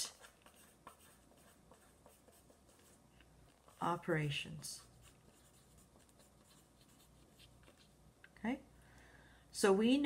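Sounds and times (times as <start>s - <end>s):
pen scratching on paper: 0.0s - 4.0s, 4.8s - 8.0s.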